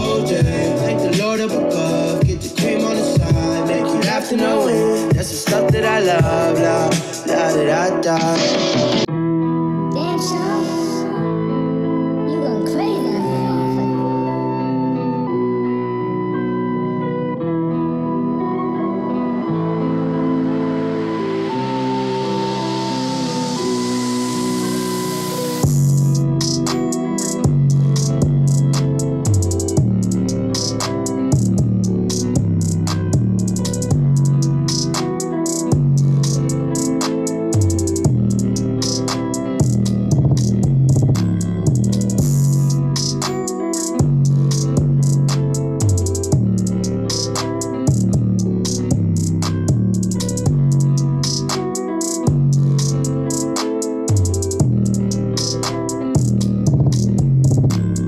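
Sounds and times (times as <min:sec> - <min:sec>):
drum-machine beats: 0:00.0 - 0:09.1, 0:25.6 - 0:58.0
heavy bass: 0:00.0 - 0:09.1, 0:23.2 - 0:43.3, 0:44.0 - 0:53.4, 0:54.1 - 0:58.0
instrumental synth music: 0:00.0 - 0:58.0
plucked guitar: 0:25.6 - 0:58.0
bass note and drum hit: 0:39.6 - 0:43.1.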